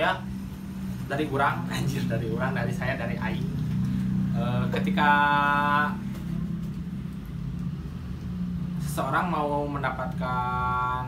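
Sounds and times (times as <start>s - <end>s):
low mechanical hum and rumble: 0.0s - 11.0s.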